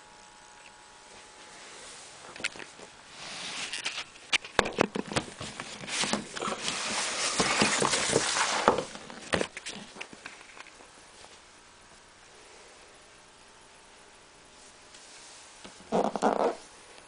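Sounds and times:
cardboard rustling and scraping: 1.8s - 11.4s.

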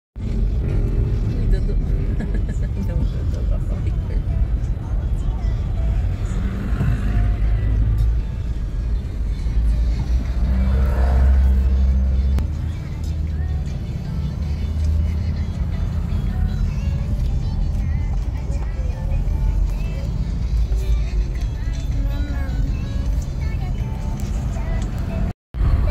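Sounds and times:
engine and road rumble: 0.2s - 25.9s
music from car stereo: 0.2s - 25.9s
voices: 1.2s - 7.5s.

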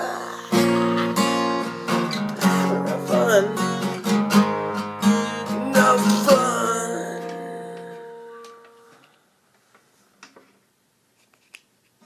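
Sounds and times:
acoustic guitar chord ringing: 0.1s - 9.0s.

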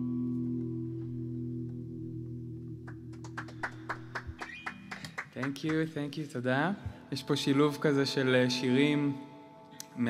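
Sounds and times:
audience clapping: 2.8s - 6.0s.

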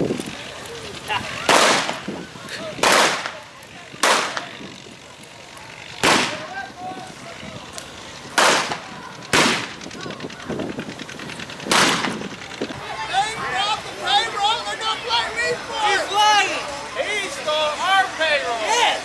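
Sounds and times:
gunshots with short echo: 8.4s - 9.7s, 11.7s - 12.2s.

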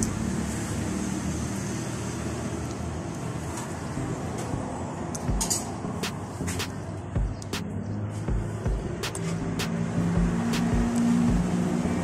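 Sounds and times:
engine running nearby: 0.0s - 12.0s
traffic rumble: 0.0s - 12.0s.

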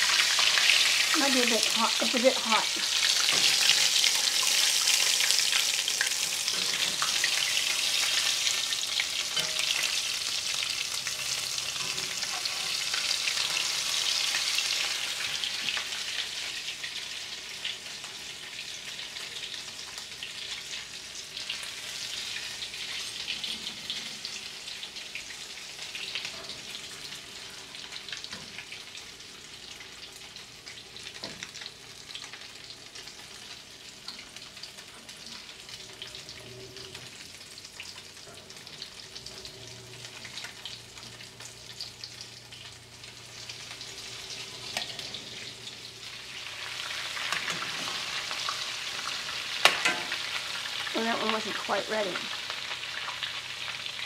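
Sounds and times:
toast sizzling in a skillet: 0.0s - 54.0s.

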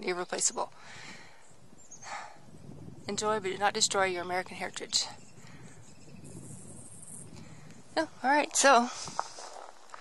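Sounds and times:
short breath: 0.8s - 2.5s.

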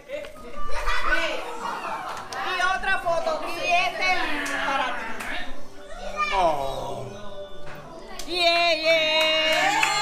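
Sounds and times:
people talking and exclaiming: 0.0s - 10.0s.

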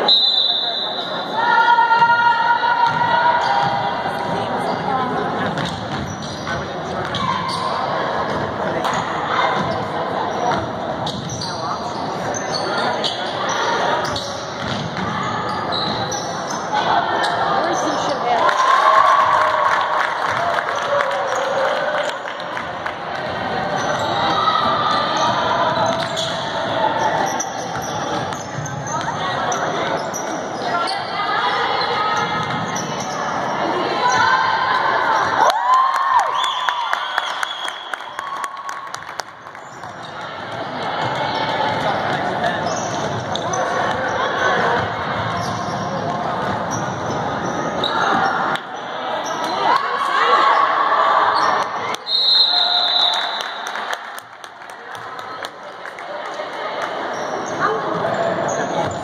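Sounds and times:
referee whistle: 0.0s - 1.4s, 52.0s - 53.6s
chatter of voices: 1.0s - 18.8s, 19.4s - 35.5s, 39.8s - 52.0s, 53.8s - 59.0s.

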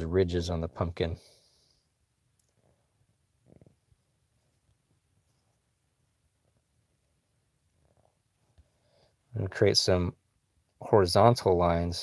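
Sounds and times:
person speaking: 0.0s - 1.4s, 9.3s - 10.2s, 10.8s - 12.0s.

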